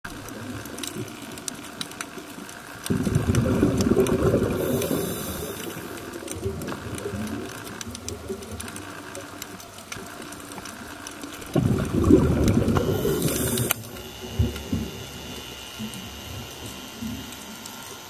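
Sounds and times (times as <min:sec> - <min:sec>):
snapping shrimp crackle: 0:00.1 - 0:11.9
scuba exhale bubbling: 0:02.9 - 0:08.5, 0:11.4 - 0:15.0
underwater hiss: 0:03.0 - 0:06.8, 0:11.6 - 0:15.2.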